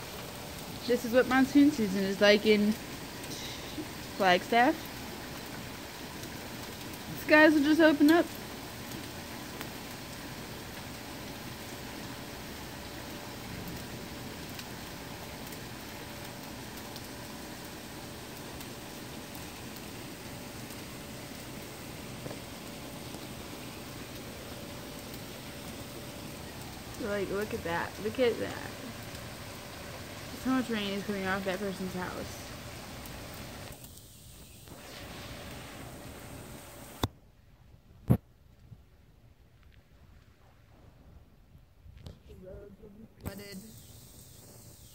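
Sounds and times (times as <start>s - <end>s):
heavy rain hissing: 0.0s - 37.1s, 42.2s - 44.9s
sharp raindrop hits: 0.0s - 37.2s.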